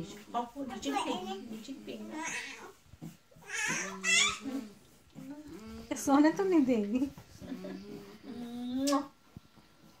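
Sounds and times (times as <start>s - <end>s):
toddler whining: 3.4s - 4.6s.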